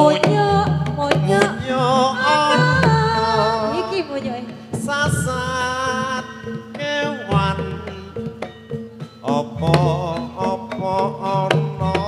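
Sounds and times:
sharp drum strokes: 0.0s - 12.0s
wavering held melody: 0.0s - 12.0s.

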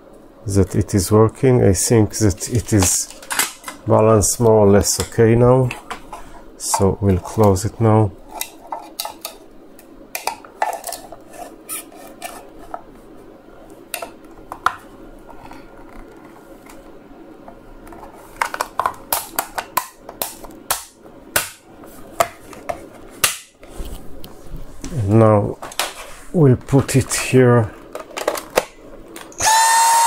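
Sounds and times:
plastic parts clicking together: 27.9s - 29.4s.

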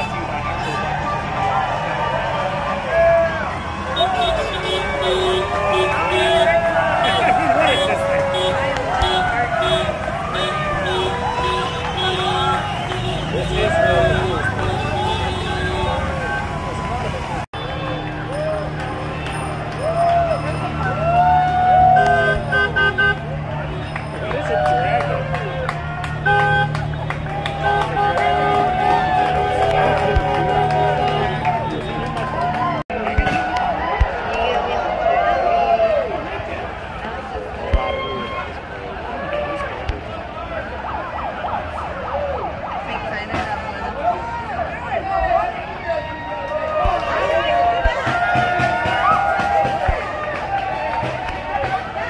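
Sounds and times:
crowd chatter: 0.0s - 52.0s
people calling out: 2.7s - 17.2s
car horn honking: 3.9s - 16.5s, 22.0s - 24.2s, 26.2s - 32.2s.

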